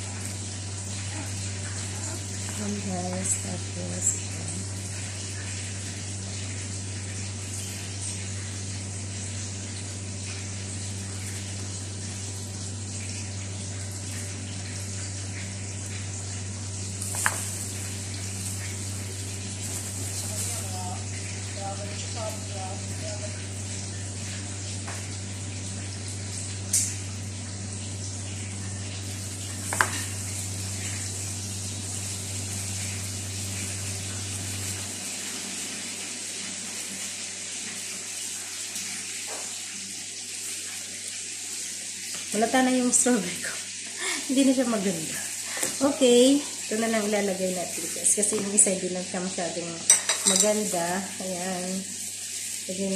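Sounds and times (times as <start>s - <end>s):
low hum and hiss: 0.0s - 38.8s.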